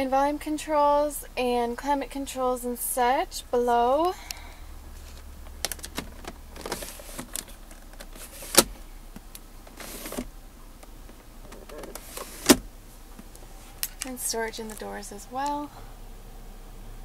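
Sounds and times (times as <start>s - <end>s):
plastic cover sliding: 5.0s - 8.8s, 9.7s - 10.3s.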